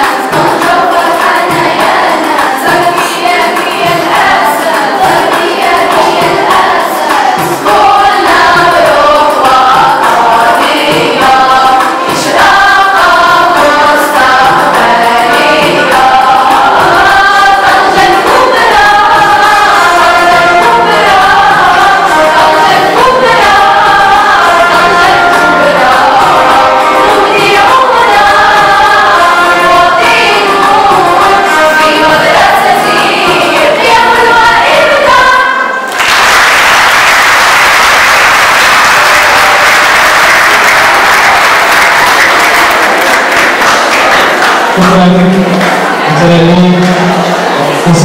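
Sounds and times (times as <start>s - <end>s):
choir singing to music: 0.0s - 48.0s.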